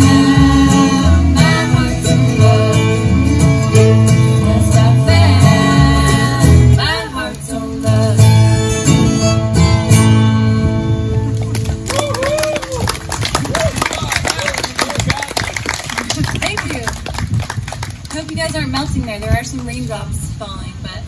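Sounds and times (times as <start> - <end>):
acoustic bluegrass band playing: 0.0 - 13.9
audience clapping: 11.3 - 19.4.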